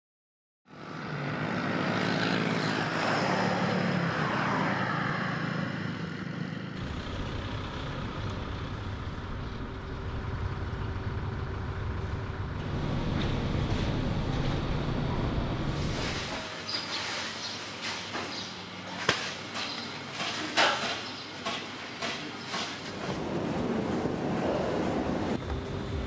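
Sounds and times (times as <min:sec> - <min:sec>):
vehicles driving past: 0:00.7 - 0:16.6
deep steady rumble: 0:06.8 - 0:16.3.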